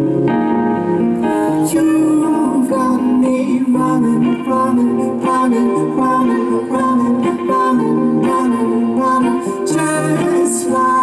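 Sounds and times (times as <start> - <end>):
plucked notes pattern: 0.0 - 11.0
sustained bass line: 0.0 - 11.0.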